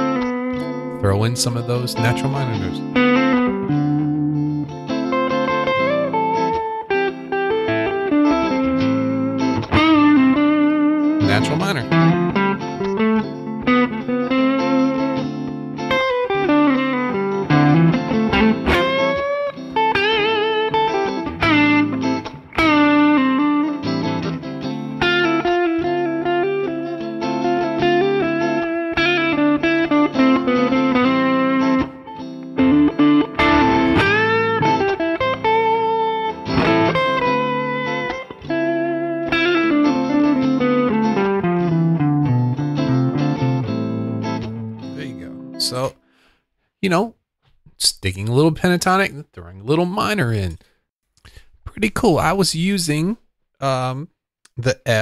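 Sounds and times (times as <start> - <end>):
lead guitar with bent notes: 0.0 - 46.2.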